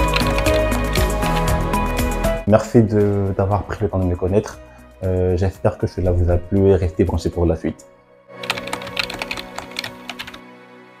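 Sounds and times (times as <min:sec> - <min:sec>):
computer keyboard typing: 0:00.0 - 0:01.6, 0:08.4 - 0:10.4
background music: 0:00.0 - 0:11.0.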